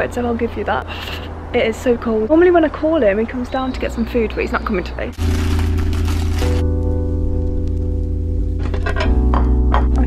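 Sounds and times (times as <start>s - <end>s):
held chords over bass: 5.2s - 10.0s.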